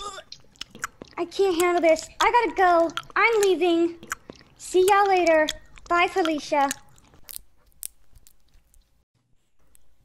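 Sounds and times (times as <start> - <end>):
honeycomb being chewed: 0.1 - 9.0.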